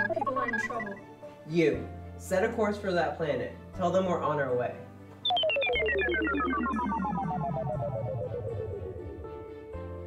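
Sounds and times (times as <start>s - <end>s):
pulsing electronic tone: 0.0s - 1.0s, 5.2s - 9.9s
low synth drone: 5.2s - 10.0s.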